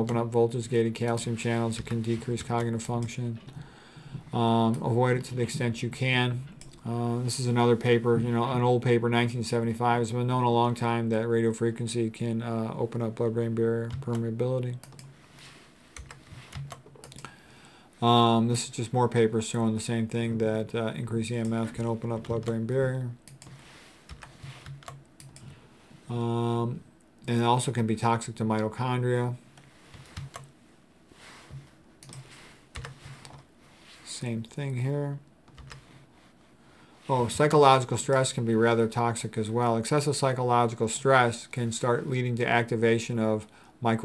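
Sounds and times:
computer clicks: 14.8 - 15.1, 32.0 - 33.4.

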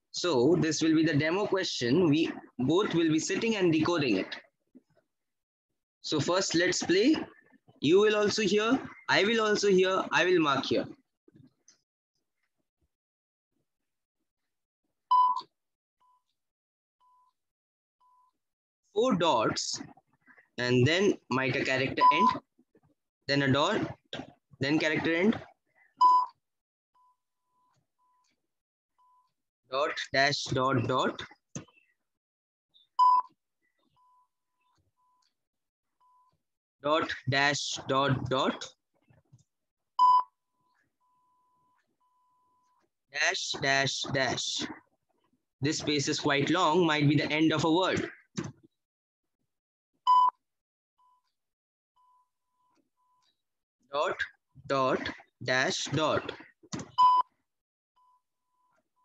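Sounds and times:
morse code beeps: 26.0 - 26.4, 33.0 - 33.3, 40.0 - 40.4, 50.1 - 50.4, 56.9 - 57.3.

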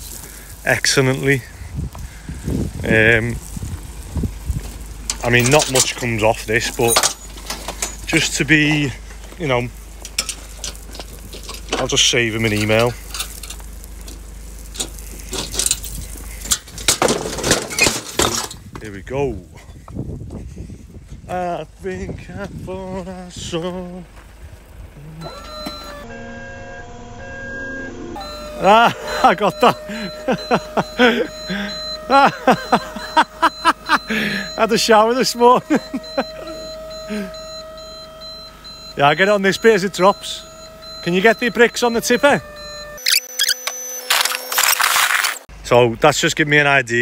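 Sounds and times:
steady electronic whine: 25.0 - 45.4
person laughing: 28.5 - 34.6, 35.4 - 37.4
rapid high-pitched electronic beeping: 42.8 - 44.0.

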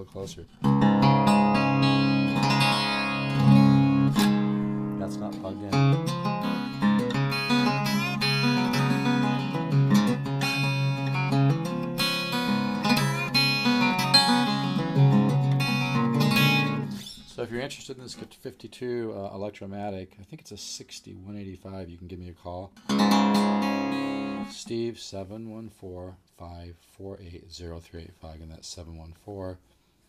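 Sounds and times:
acoustic guitar strummed chords: 0.6 - 17.4, 22.8 - 24.6
guitar picked notes: 0.6 - 17.5, 22.8 - 24.6.

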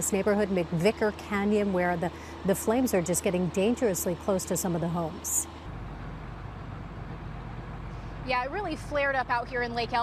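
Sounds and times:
low mechanical rumble: 0.0 - 10.0.

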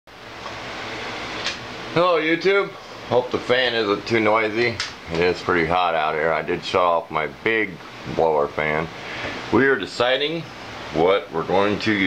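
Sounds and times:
blower fan rushing air: 0.1 - 12.0.

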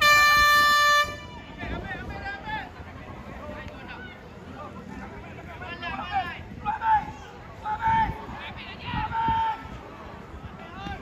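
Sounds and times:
air horn blast: 0.0 - 1.4.

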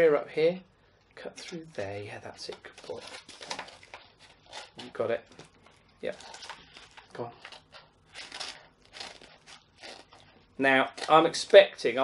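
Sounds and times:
paper crinkling: 2.4 - 11.6.

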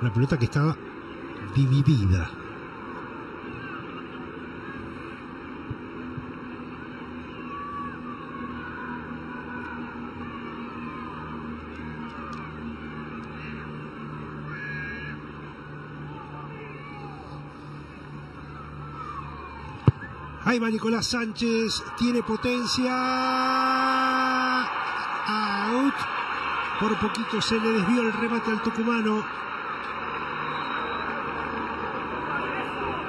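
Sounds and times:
faint crowd voices: 0.0 - 33.0
low crowd hum: 0.0 - 33.0
whistles: 18.6 - 20.4, 30.2 - 31.6.

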